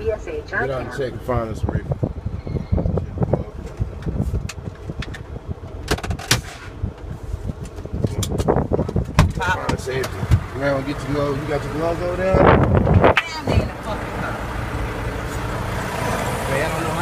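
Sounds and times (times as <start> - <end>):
diesel engine rumble: 0.0 - 17.0
knocks and rattles: 3.7 - 6.6.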